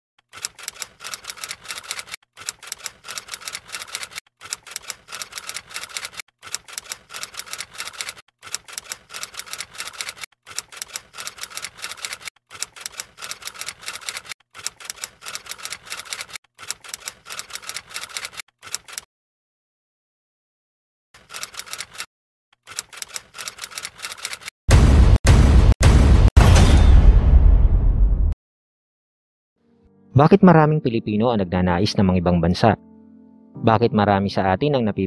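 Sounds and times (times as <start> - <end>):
typewriter key clicks: 0.4 - 19.1, 22.7 - 24.5.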